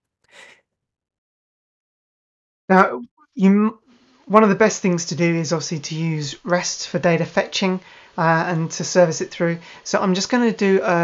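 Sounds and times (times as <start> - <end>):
soft intake of breath: 7.8 - 8.2, 9.6 - 9.9.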